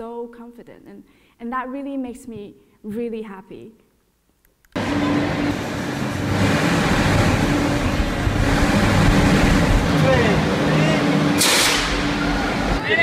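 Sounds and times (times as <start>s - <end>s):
steady low hum: 4.8s - 12.9s
dense ambient noise: 4.8s - 13.0s.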